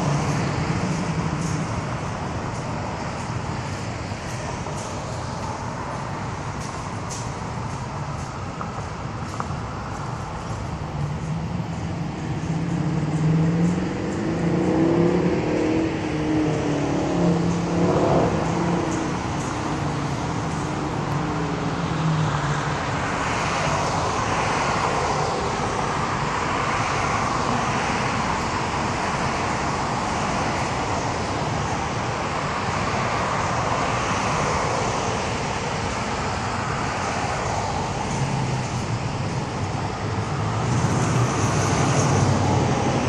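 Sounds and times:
cars passing on road: 0.0 - 43.0.

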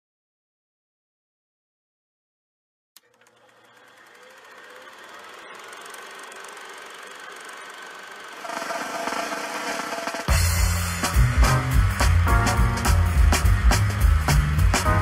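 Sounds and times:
machine clattering: 3.0 - 10.3.

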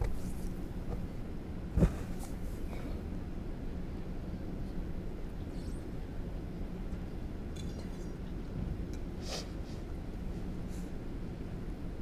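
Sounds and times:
low hum of sports hall: 0.0 - 12.0
brief hiss: 9.2 - 9.6.

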